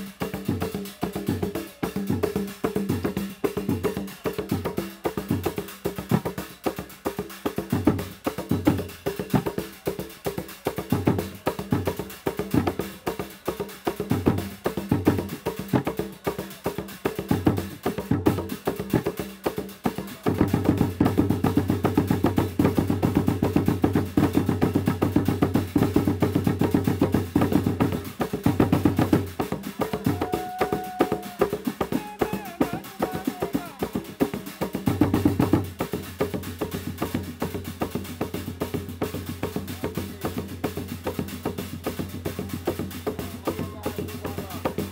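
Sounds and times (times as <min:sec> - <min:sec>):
drums playing driving rhythm: 0:00.0 - 0:44.9.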